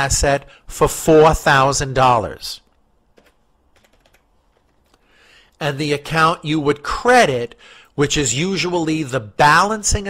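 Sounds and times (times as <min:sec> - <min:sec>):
faint keyboard keystrokes: 0:03.1 - 0:05.0.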